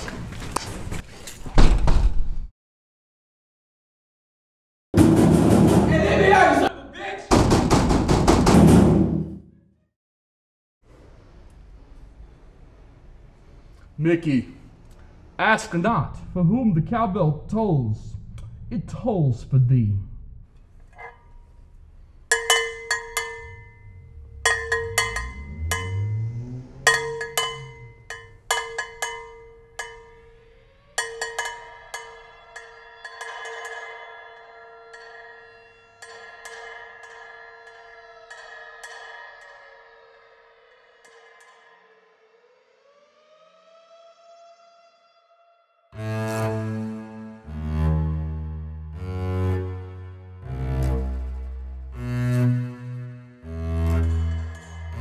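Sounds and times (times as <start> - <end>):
cowbell struck: 22.3 - 39.4
low bowed-string music: 23.1 - 30.6, 46.0 - 55.0
upward sliding tone: 23.4 - 28.2.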